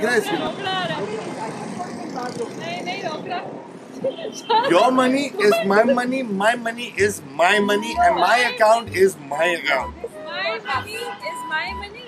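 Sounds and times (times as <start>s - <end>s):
man speaking: 0.0s - 0.4s, 4.7s - 10.0s.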